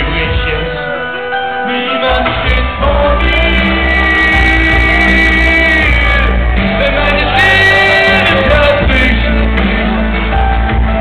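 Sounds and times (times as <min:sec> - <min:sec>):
live band music over loudspeakers: 0:00.0 - 0:11.0.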